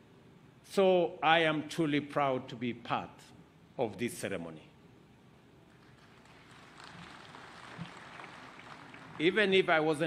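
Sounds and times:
faint audience applause: 5.7 - 9.8.

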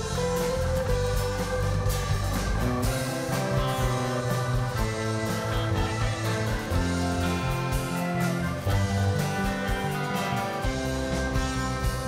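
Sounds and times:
guitars: 0.0 - 12.0
live country band playing: 0.0 - 12.0.

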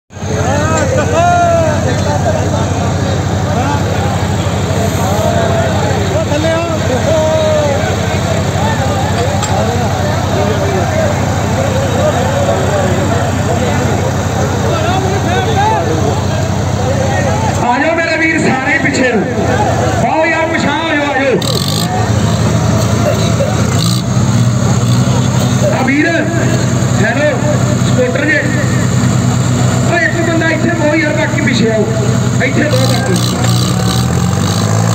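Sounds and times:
tractor diesel engine running: 0.1 - 34.9
men shouting: 0.2 - 17.9.

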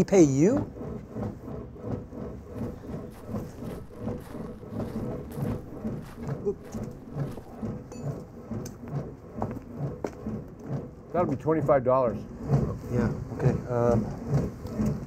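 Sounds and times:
elliptical machine rhythmic rumble: 0.0 - 15.0.

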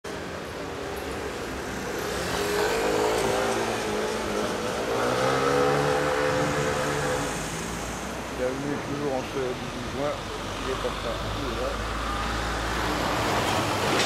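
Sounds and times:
street traffic: 0.0 - 14.0.

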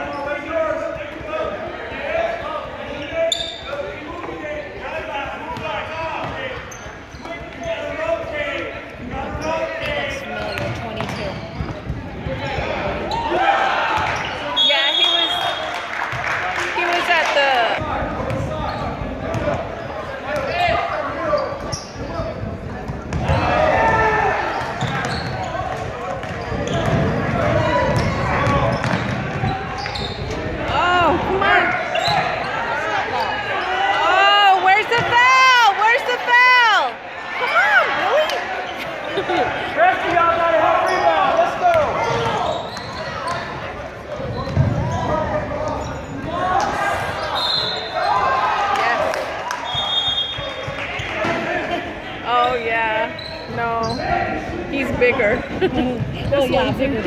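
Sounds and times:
voices echoing in gym: 0.0 - 57.0
basketball bouncing on hardwood floor: 10.6 - 11.9, 26.2 - 29.3.

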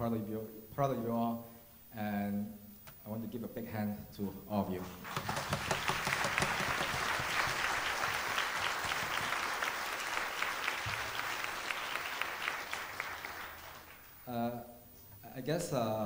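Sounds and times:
audience applauding: 4.8 - 14.3.

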